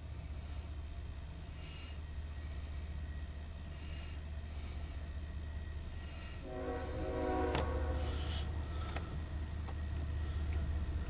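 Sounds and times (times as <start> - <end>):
low steady hum: 0.0 - 11.0
distant locomotive air horn: 6.0 - 8.9.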